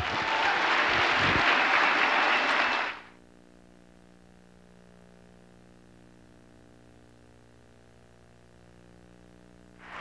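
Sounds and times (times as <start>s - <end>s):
audience applauding: 0.0s - 3.1s.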